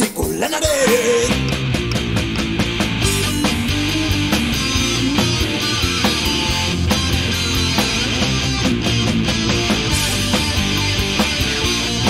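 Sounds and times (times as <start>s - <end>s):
rock band playing instrumental: 0.1s - 12.0s.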